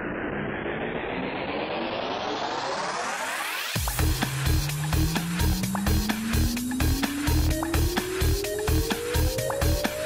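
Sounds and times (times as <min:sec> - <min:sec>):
synthesized rising noise sweep: 0:00.0 - 0:10.0.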